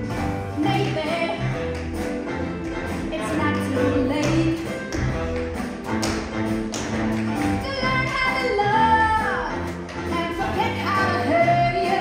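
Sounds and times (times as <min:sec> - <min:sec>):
tap shoes clicking on stage: 0:00.6 - 0:08.6, 0:09.5 - 0:11.2.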